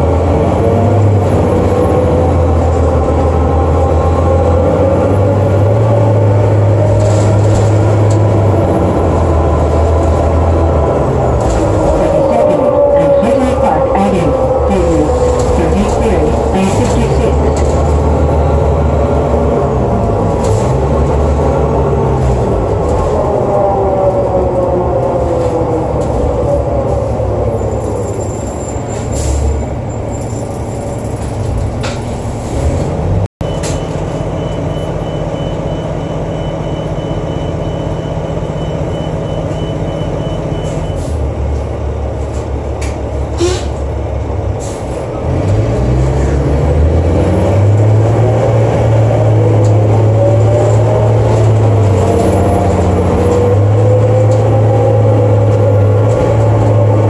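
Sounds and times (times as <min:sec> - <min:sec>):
diesel engine running: 0:00.0 - 0:24.2
bus driveline whine: 0:00.0 - 0:57.0.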